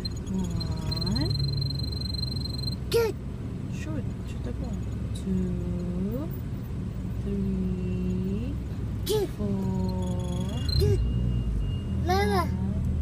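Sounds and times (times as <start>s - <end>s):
car engine rumble: 0.0s - 13.0s.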